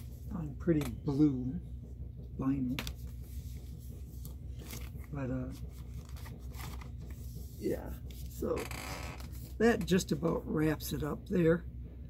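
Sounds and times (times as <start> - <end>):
steady low hum: 0.0 - 12.0
paper and cardboard rustling: 2.8 - 9.6.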